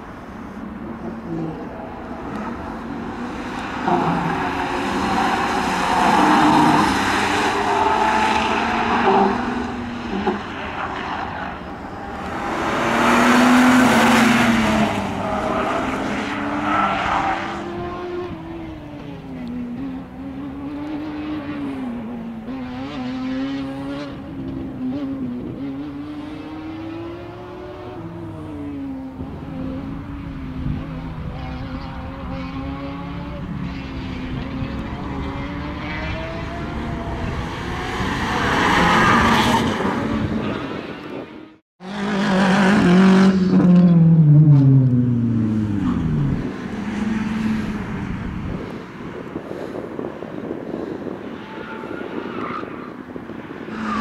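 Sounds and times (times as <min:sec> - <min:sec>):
car engine revving: 0:01.0 - 0:28.1.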